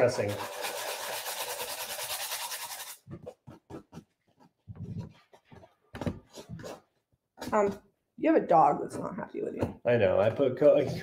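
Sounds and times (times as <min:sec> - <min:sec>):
sandpaper scratching on metal tin: 0:00.0 - 0:03.0.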